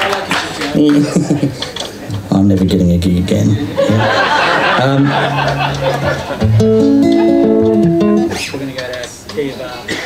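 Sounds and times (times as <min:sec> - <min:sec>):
acoustic guitar strumming chords: 0:05.2 - 0:08.5.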